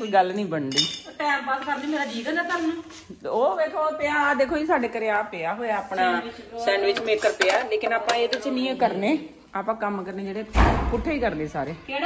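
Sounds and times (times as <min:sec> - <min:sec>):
metal utensils clinking: 0:00.0 - 0:02.0, 0:06.8 - 0:08.8
woman's voice: 0:00.0 - 0:12.0.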